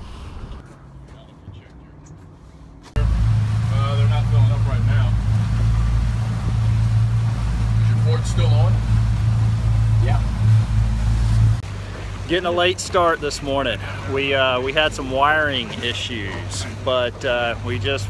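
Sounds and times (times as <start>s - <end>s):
boat engines humming: 0.0s - 18.0s.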